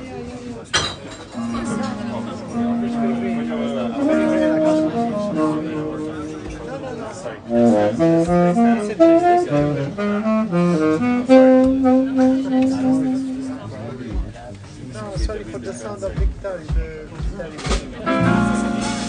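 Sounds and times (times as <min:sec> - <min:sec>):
double bass: 0:01.4 - 0:06.7, 0:07.4 - 0:14.3, 0:18.1 - 0:19.0
jazz saxophone: 0:01.4 - 0:14.3, 0:18.1 - 0:19.0
drums: 0:14.0 - 0:19.0
piano: 0:18.1 - 0:19.0.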